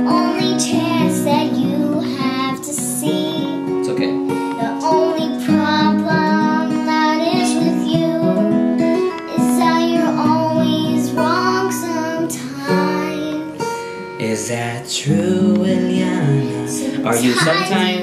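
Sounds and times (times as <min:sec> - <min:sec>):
girl singing: 0:00.0 - 0:18.0
strummed acoustic guitar: 0:00.0 - 0:18.0.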